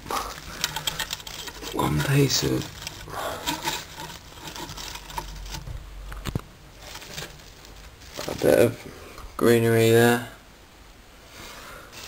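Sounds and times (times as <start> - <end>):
plant leaves rustling: 0.0 - 9.9.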